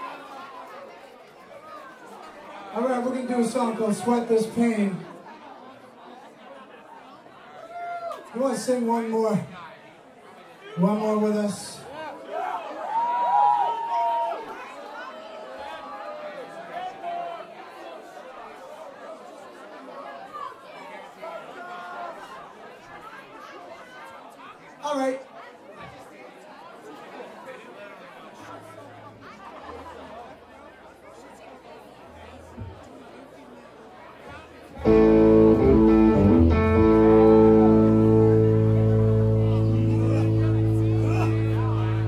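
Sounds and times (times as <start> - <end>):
audience chatter: 0.0 - 42.0
amplified harmonica: 34.8 - 42.0
guitar holding a chord: 34.8 - 42.0.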